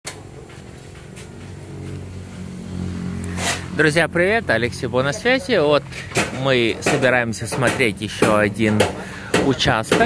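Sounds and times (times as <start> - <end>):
engine running with low hum: 0.1 - 10.0.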